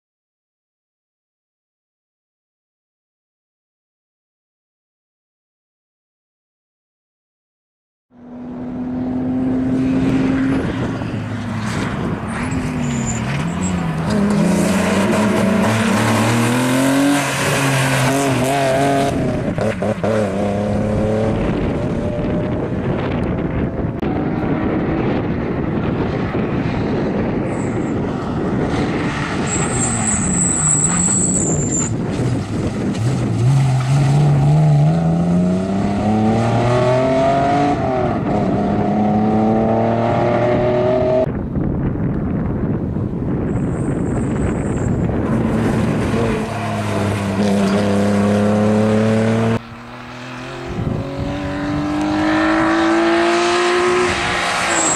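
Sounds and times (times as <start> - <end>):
car engine revving: 8.2 - 26.6, 32.2 - 41.3, 44.7 - 54.9
high squeal: 12.3 - 14.0, 29.4 - 32.0, 54.6 - 54.9.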